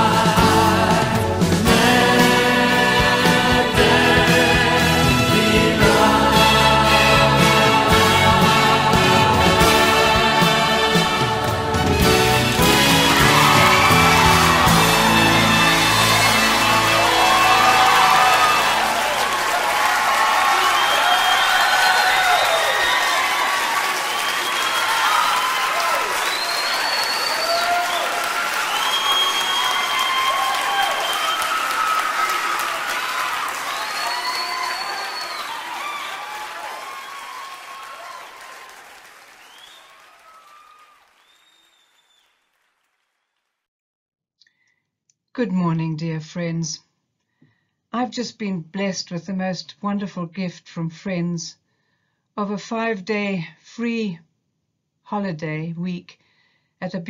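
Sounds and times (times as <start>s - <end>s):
audience applause and cheers: 0.0s - 43.4s.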